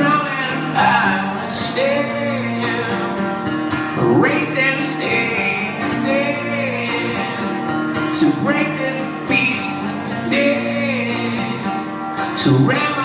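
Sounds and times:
man singing long notes: 0:00.0 - 0:03.2, 0:04.0 - 0:13.0
acoustic guitars strumming: 0:00.0 - 0:13.0.

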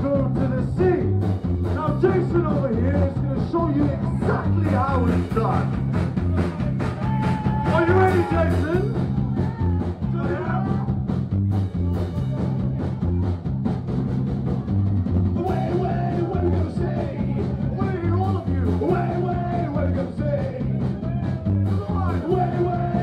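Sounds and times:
live rock band playing: 0:00.0 - 0:23.0
person singing: 0:15.4 - 0:23.0.

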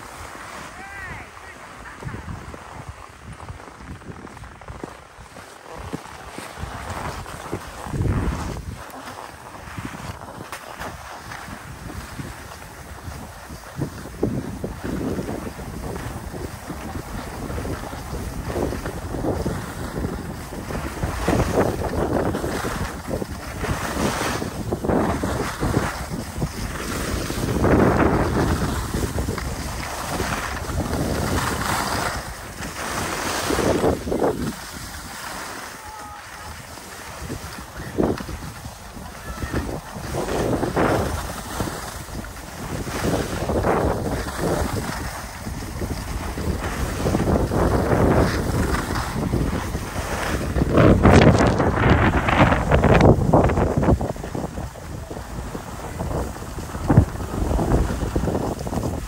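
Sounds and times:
skis scraping on packed snow: 0:00.0 - 0:59.0
wind rushing over microphone: 0:00.0 - 0:59.0.

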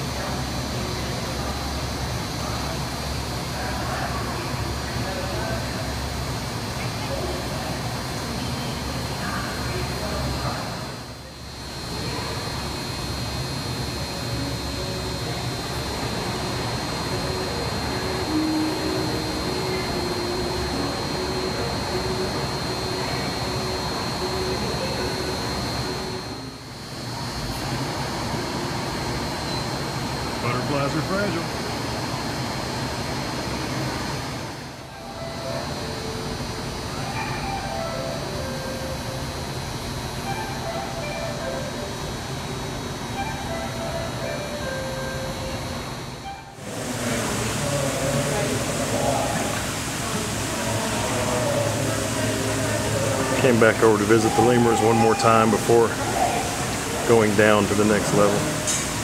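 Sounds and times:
indistinct voices murmuring: 0:00.0 - 0:33.2, 0:34.7 - 0:59.0
mechanical hum and hiss: 0:00.0 - 0:59.0
faint high whine: 0:06.8 - 0:33.2.

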